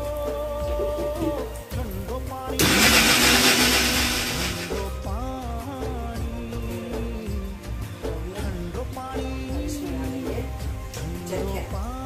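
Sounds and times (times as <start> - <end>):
background music: 0.0 - 12.0
mixer grinder motor grinding: 2.6 - 5.0.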